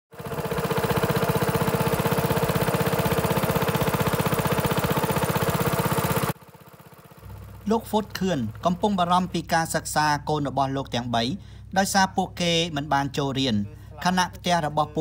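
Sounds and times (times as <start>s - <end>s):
boat petrol engine running: 0.1s - 15.0s
faint hum: 7.2s - 15.0s
man speaking: 7.6s - 15.0s.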